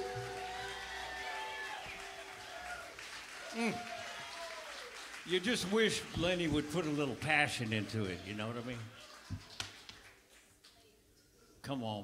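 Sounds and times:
live band final chord ringing: 0.0 - 1.8.

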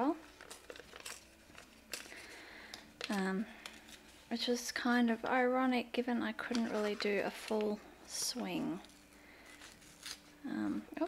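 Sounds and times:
paper crinkling and rustling: 0.2 - 5.4, 6.4 - 10.4.

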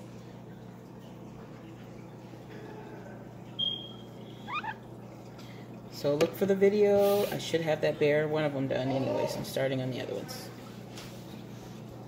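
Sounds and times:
aquarium air pump humming: 0.0 - 12.0
high whistled animal call: 3.6 - 4.8.

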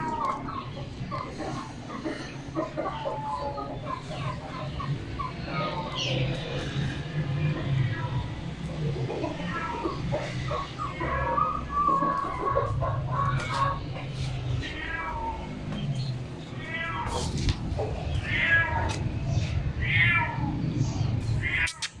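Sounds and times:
animal crying: 0.0 - 15.7, 16.5 - 22.0.

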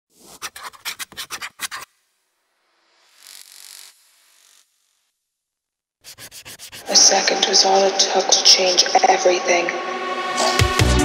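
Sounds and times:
quick rough scratching strokes: 0.1 - 2.2, 6.0 - 7.0.

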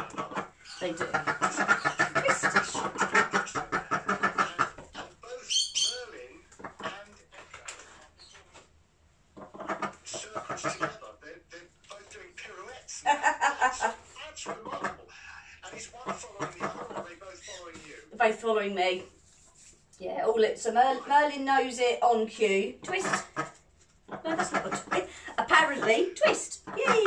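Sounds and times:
people laughing: 0.0 - 5.3, 12.9 - 17.1
duck quacking: 0.0 - 7.0, 9.4 - 11.1, 13.8 - 17.6, 22.8 - 27.0.

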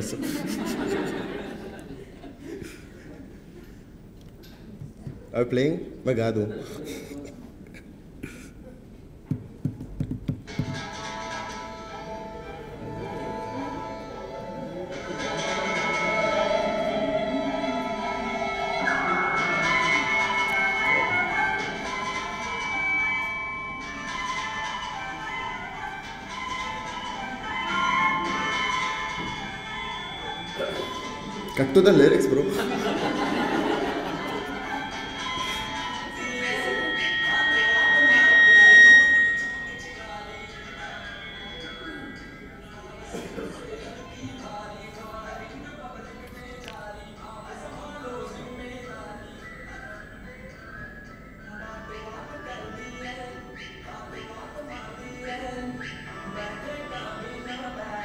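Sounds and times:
song over speakers: 10.4 - 58.0
steady high tone: 10.5 - 58.0.

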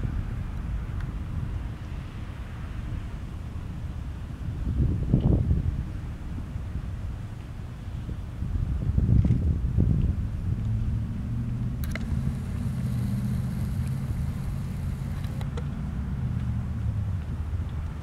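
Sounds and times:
wind buffeting microphone: 0.0 - 7.1, 8.0 - 15.6
boat engine idling: 11.8 - 15.4.

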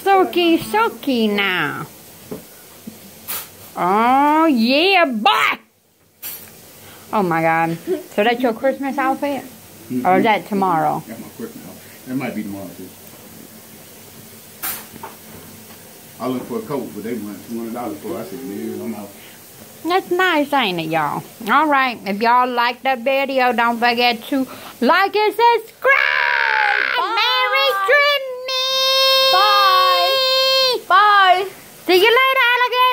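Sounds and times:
low room noise: 0.0 - 32.9.

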